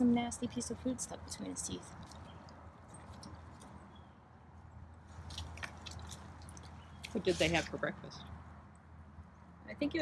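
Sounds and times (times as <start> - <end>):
animal chewing food: 1.8 - 3.9, 5.1 - 7.6.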